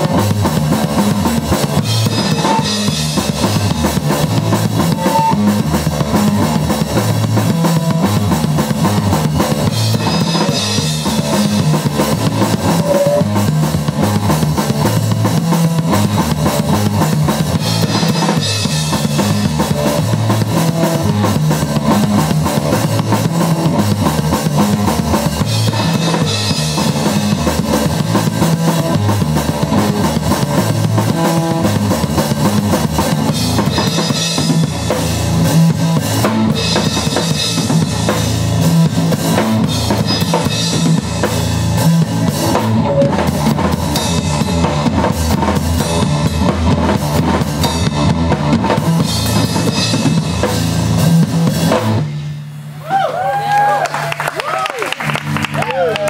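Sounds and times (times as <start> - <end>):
amplified electric guitar: 0.0 - 52.1
drum kit played hard: 0.0 - 56.0.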